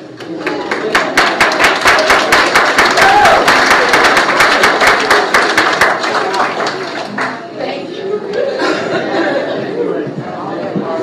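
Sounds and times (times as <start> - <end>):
crowd clapping: 0.1 - 7.5.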